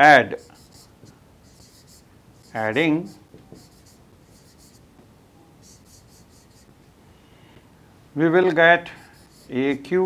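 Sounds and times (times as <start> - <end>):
marker writing on a whiteboard: 0.0 - 4.9, 5.6 - 6.7, 8.8 - 9.9.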